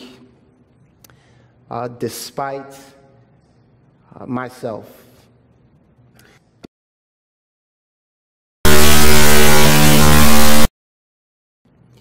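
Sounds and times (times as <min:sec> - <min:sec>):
harsh electronic buzz: 0:08.6 - 0:10.7.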